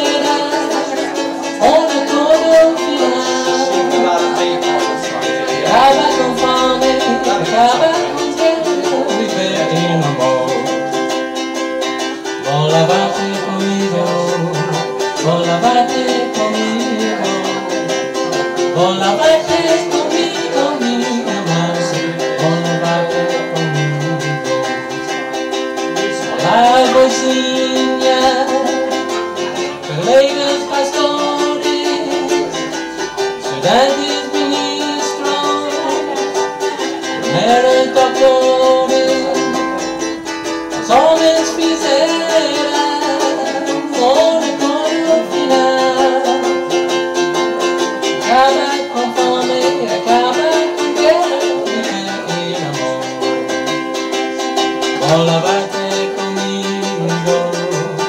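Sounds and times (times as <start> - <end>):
man singing: 0.0 - 58.0
strummed ukulele: 0.0 - 58.0.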